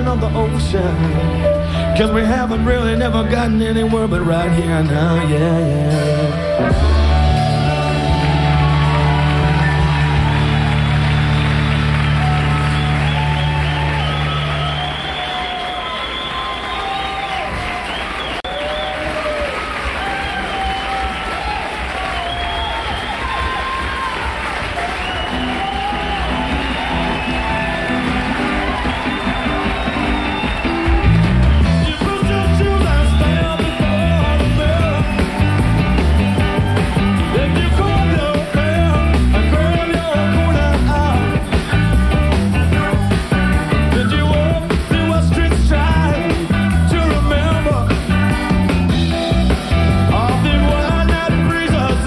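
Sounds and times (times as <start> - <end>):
rock band playing live: 0.0 - 18.3, 22.6 - 52.0
audience applause and cheering: 6.6 - 52.0.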